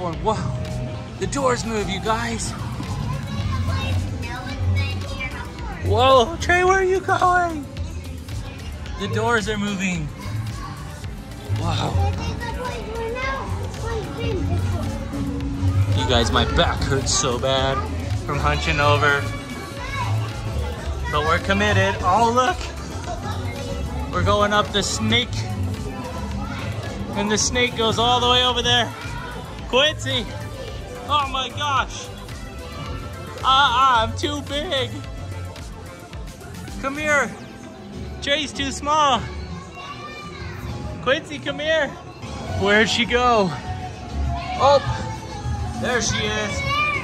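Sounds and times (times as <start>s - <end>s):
background music with bass line: 0.0s - 37.4s
children's voices at play: 0.0s - 47.0s.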